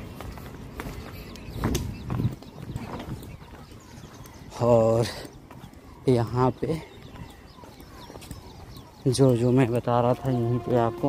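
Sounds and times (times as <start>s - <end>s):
footsteps on dirt path: 0.0s - 11.0s.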